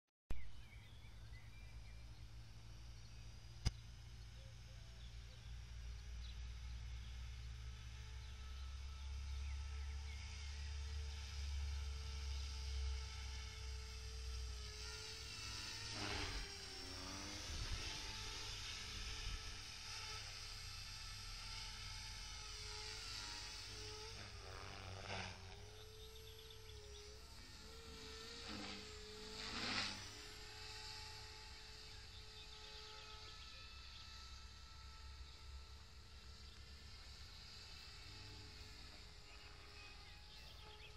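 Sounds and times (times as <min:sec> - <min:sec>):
model helicopter whine: 0:00.5 - 0:40.9.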